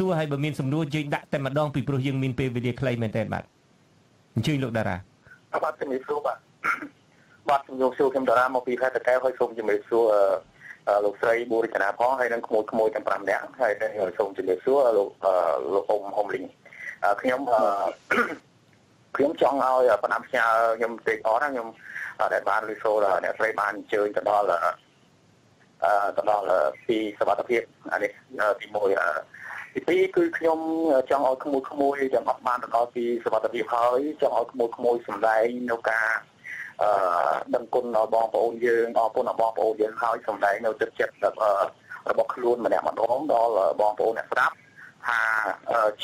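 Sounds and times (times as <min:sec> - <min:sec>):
person reading radio news: 0:00.0 - 0:46.0.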